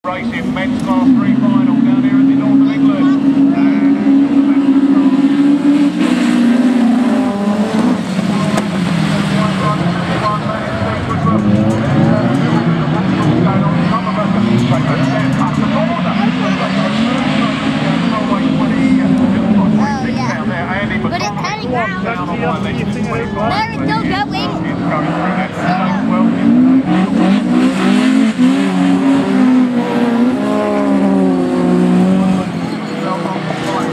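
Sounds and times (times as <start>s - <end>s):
racing car engines: 0.0s - 33.9s.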